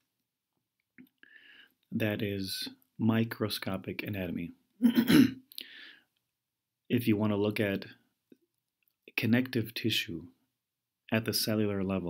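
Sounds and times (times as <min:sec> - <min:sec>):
short quiet breath in: 0:01.2 - 0:01.8, 0:05.6 - 0:06.1.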